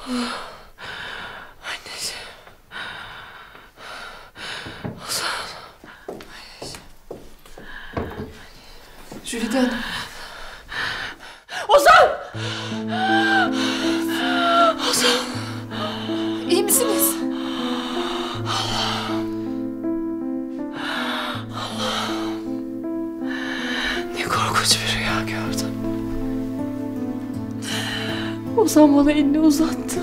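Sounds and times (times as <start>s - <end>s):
woman gasping: 9.7s - 19.6s
woman crying out and sobbing: 11.7s - 17.3s
soft background music: 12.4s - 30.0s.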